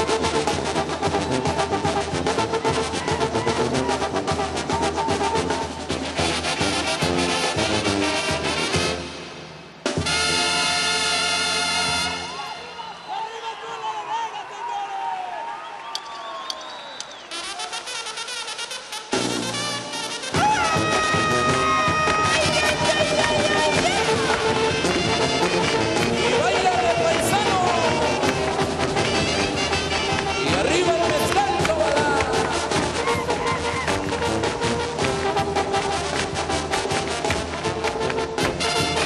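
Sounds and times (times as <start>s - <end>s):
crowd voices and shouts: 0.0s - 7.2s, 11.5s - 18.6s, 20.1s - 36.8s
brass band playing: 0.0s - 13.0s, 17.3s - 39.0s.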